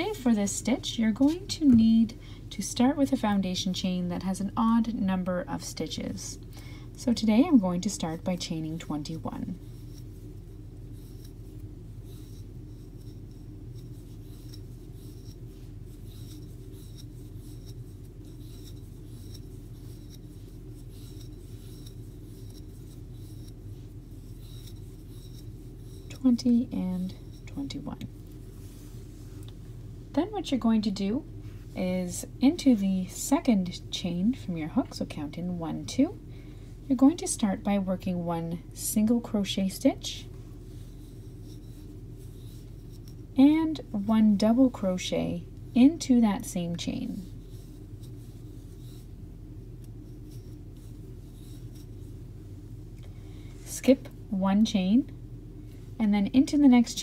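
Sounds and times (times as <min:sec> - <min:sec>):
yarn rubbing over crochet hook: 0:00.0 - 0:06.4, 0:07.0 - 0:29.5, 0:36.9 - 0:53.0
steady low hum: 0:00.0 - 0:57.0.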